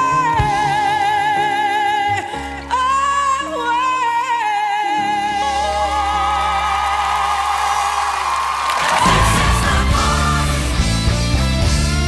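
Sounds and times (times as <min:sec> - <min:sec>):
woman singing with vibrato: 0:00.0 - 0:07.8, 0:08.8 - 0:10.8
audience cheering and applause: 0:05.7 - 0:11.2.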